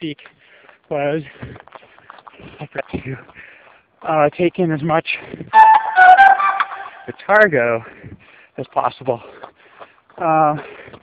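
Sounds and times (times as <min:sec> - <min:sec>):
whistle-like notes: 0:05.6 - 0:07.2.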